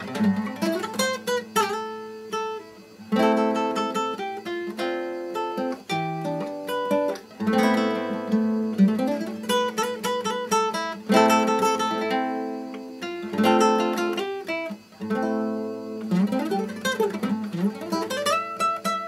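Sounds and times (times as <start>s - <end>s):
fingerpicked classical guitar: 0.0s - 19.0s.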